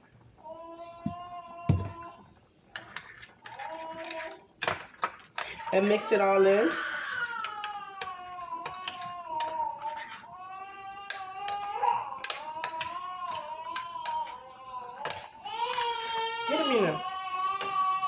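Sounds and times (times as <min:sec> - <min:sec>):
baby crying: 0:05.4 - 0:18.0
spoon clicking against bowl: 0:11.1 - 0:14.3.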